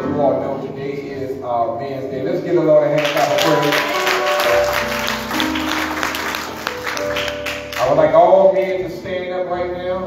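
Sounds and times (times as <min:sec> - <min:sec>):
congregation clapping: 0:03.0 - 0:08.2
instrumental music sustained chords: 0:03.0 - 0:10.0.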